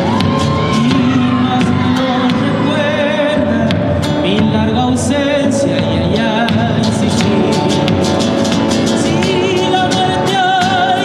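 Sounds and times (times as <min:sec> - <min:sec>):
bass drum beat: 0:00.0 - 0:11.0
strummed guitar: 0:00.0 - 0:11.0.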